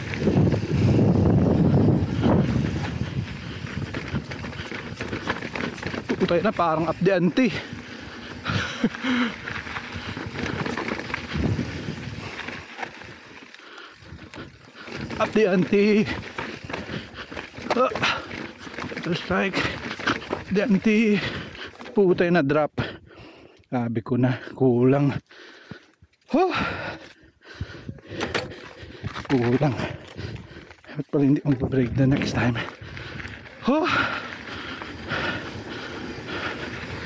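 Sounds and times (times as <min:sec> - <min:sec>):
wind on microphone: 0:00.0 - 0:06.0, 0:09.6 - 0:12.6
bike tyres on gravel: 0:00.0 - 0:22.6, 0:24.0 - 0:37.0.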